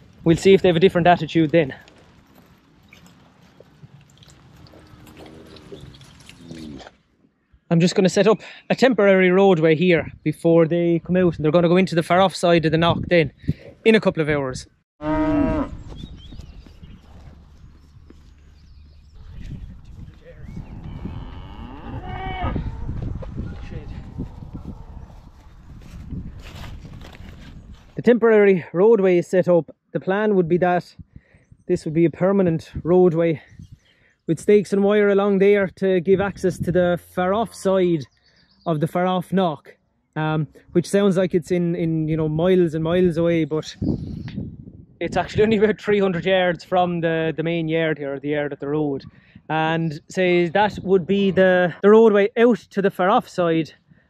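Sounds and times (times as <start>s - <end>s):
cattle rustling on grass: 0.0s - 6.9s, 15.2s - 28.0s
cattle mooing: 4.7s - 6.9s, 15.0s - 15.8s, 20.4s - 23.0s
wind rumbling on microphone: 12.5s - 28.0s, 30.9s - 34.5s, 36.1s - 37.0s, 41.9s - 47.0s.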